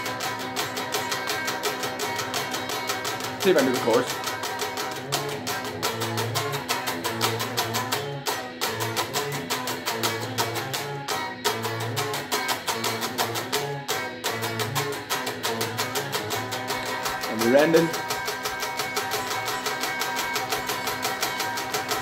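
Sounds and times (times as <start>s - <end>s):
electric guitar strumming: 0.0s - 22.0s.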